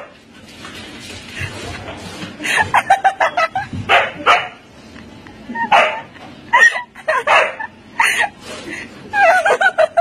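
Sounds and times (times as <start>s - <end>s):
dog barking and yipping: 3.9s - 4.6s, 5.7s - 6.1s, 7.3s - 7.7s.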